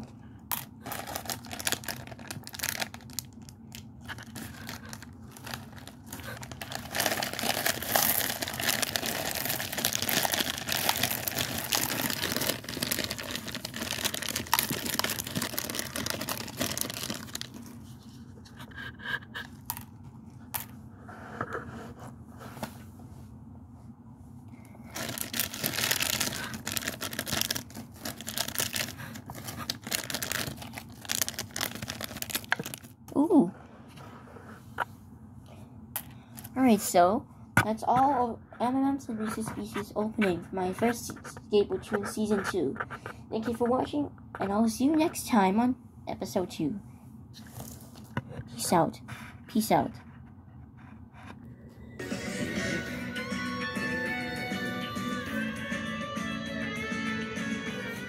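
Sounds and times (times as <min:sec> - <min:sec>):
candies shaken out: 0:00.5 - 0:17.8, 0:24.8 - 0:33.0
plastic wrappers crinkling: 0:00.5 - 0:17.8, 0:24.8 - 0:33.0.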